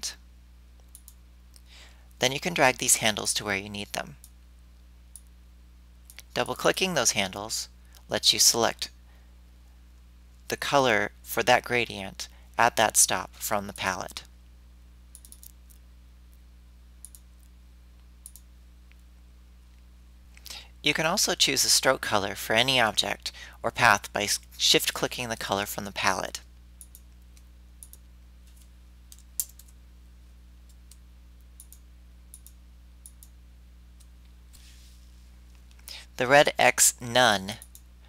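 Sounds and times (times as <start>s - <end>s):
low electrical hum: 0.0s - 38.0s
computer mouse clicks: 0.8s - 1.2s, 15.1s - 15.6s, 17.0s - 17.3s, 18.2s - 18.5s, 31.6s - 33.3s
soft breath: 1.6s - 2.1s.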